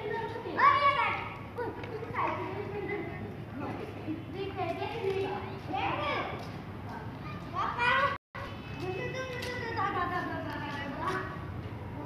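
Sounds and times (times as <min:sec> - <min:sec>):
children playing: 0:00.0 - 0:11.4.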